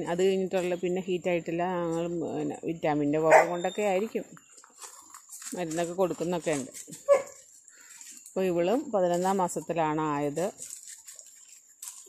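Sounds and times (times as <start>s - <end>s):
person talking: 0.0s - 4.3s, 5.5s - 6.8s, 8.4s - 10.6s
dog barking: 3.3s - 3.6s, 7.1s - 7.4s.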